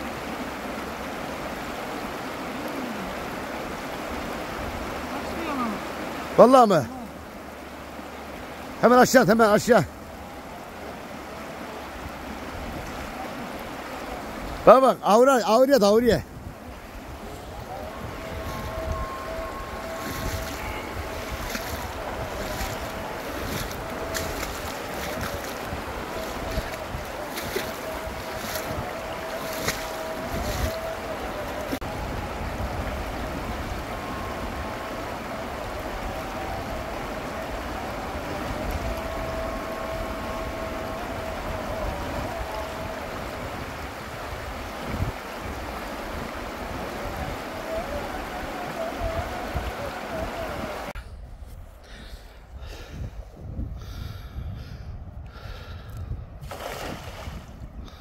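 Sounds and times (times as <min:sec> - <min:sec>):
river rushing over rocks: 0:00.0 - 0:51.0
wind buffeting microphone: 0:16.0 - 0:58.0.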